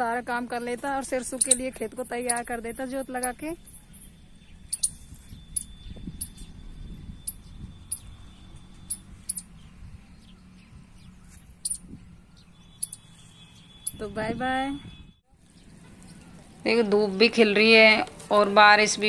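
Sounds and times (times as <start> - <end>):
faint steady high whine: 0.1 - 9.5
high-pitched chirps: 1.3 - 9.6, 11.2 - 12.0, 12.6 - 14.2.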